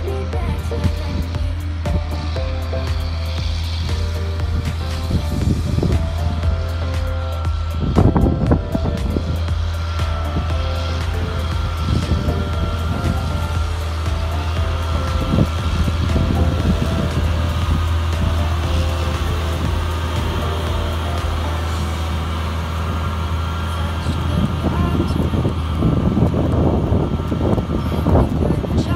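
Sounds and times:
background music: 0.0s - 28.9s
tractor diesel engine running: 0.0s - 28.9s.

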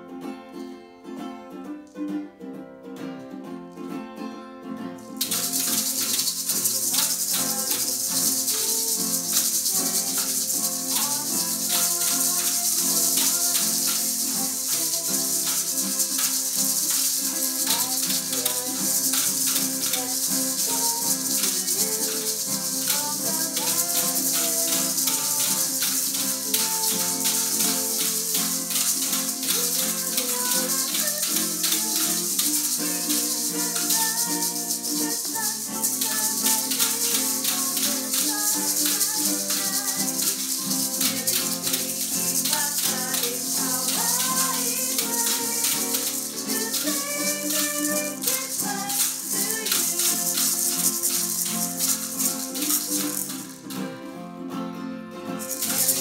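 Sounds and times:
plucked string band playing: 0.0s - 56.0s
shaker rhythm: 4.9s - 54.2s, 55.3s - 56.0s.

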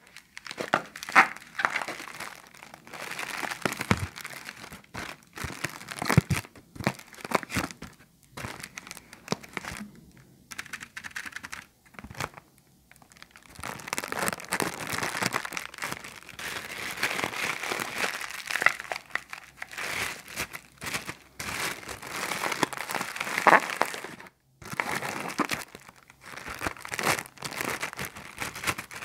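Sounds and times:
plastic bag crinkling: 0.0s - 29.0s.

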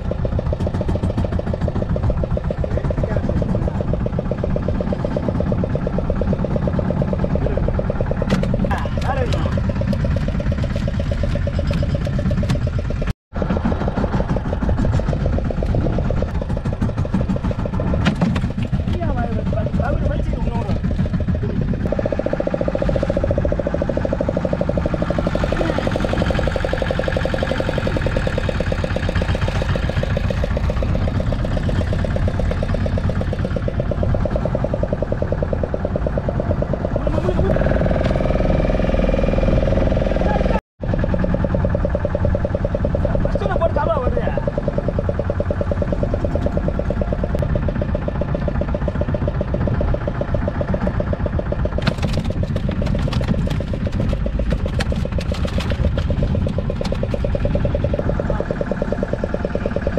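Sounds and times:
boat engine running: 0.0s - 59.9s
steady hum: 0.0s - 59.9s
men talking: 19.0s - 20.8s.

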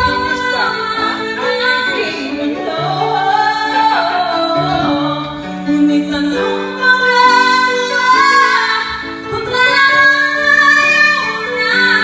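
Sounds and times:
instrumental backing track: 0.0s - 12.0s
woman singing karaoke: 0.0s - 12.0s.

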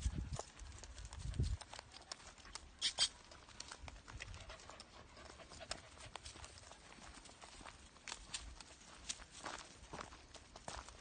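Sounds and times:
footsteps on gravel: 3.2s - 11.0s.

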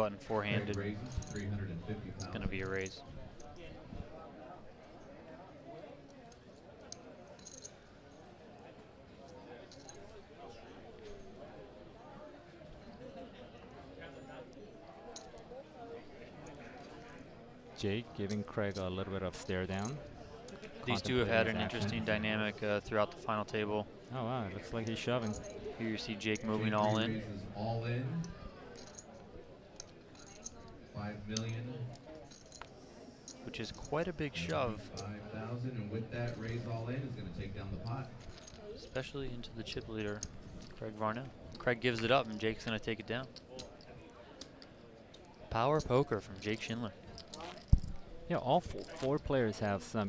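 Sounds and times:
faint murmur of voices: 0.0s - 50.0s.

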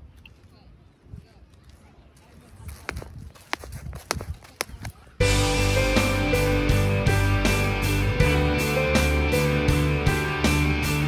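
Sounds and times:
shoes tapping on wet concrete: 2.7s - 5.2s.

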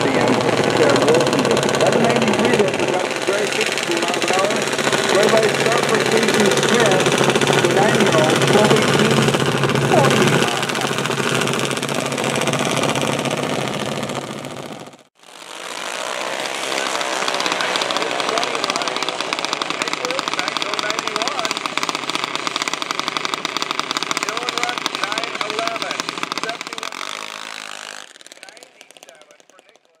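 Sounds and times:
voices: 0.0s - 12.6s, 16.5s - 21.9s, 24.0s - 27.4s, 28.3s - 30.0s
small engines running: 0.0s - 30.0s.

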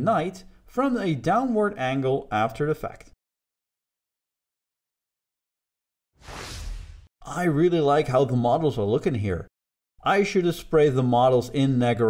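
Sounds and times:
whoosh of rushing noise: 6.2s - 7.1s.

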